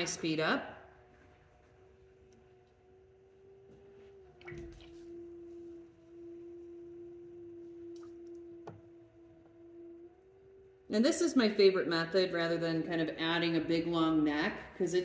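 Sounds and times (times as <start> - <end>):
pottery wheel motor humming: 0.0 - 15.0.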